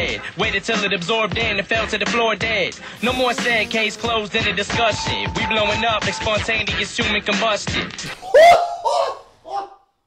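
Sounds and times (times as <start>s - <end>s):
man laughing excitedly: 3.0s - 4.2s.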